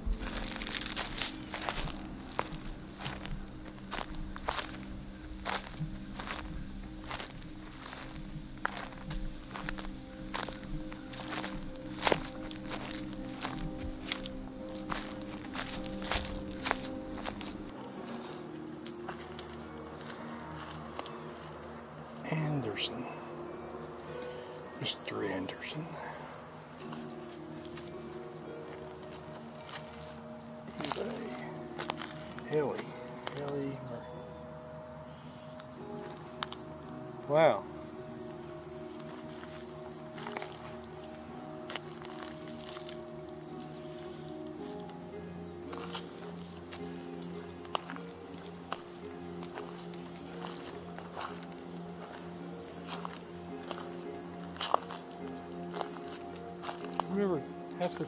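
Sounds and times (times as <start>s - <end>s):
soft low held tones: 0.0s - 57.1s
insects chirring: 0.0s - 58.0s.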